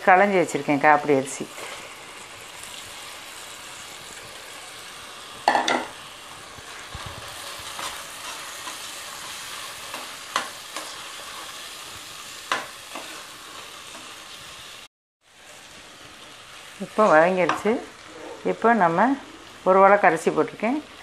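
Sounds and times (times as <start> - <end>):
rice sizzling in pot: 0.0 - 21.0.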